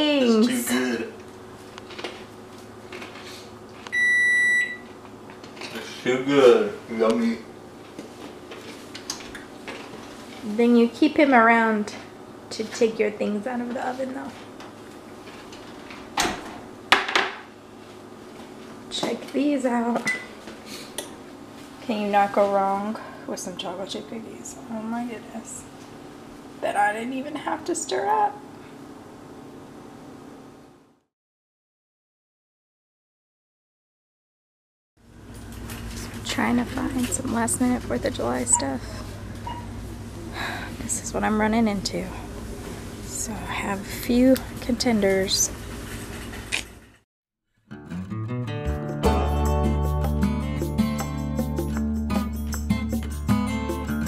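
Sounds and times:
kitchen room noise: 0.0 - 31.0, 35.0 - 47.0
microwave electronic beep: 3.9 - 5.0, 38.5 - 38.8, 39.4 - 39.7.

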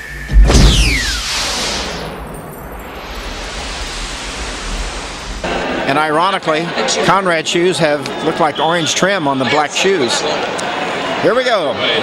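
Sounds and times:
low hum: 0.0 - 6.3
whoosh with falling tone: 0.0 - 6.4
rushing hiss: 0.7 - 6.1.

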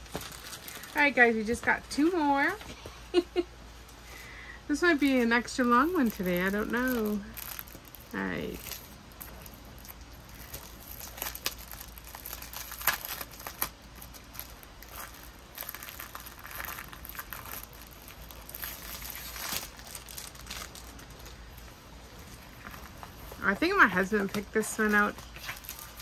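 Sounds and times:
plastic packaging crinkling: 0.0 - 3.2, 4.7 - 26.0.

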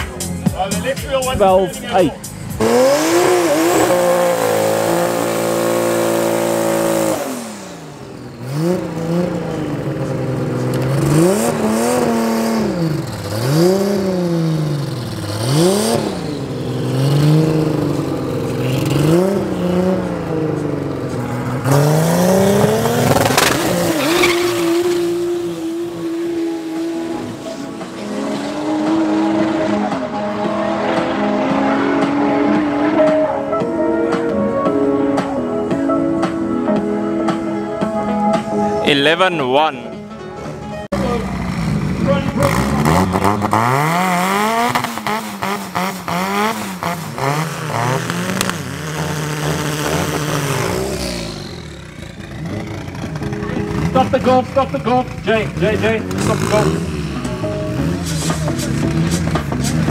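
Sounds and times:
drag car engine revving: 1.9 - 33.6, 41.0 - 59.9
race car engine at high revs: 2.3 - 33.6, 41.2 - 59.9
car accelerating through gears: 2.5 - 33.7, 41.2 - 59.9
sharp crack: 22.9 - 24.1, 47.8 - 50.6.

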